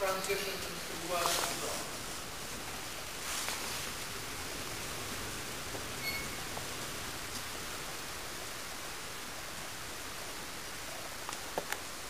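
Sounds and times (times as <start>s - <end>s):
steady background hiss: 0.0s - 12.0s
short high chirp: 6.0s - 6.4s.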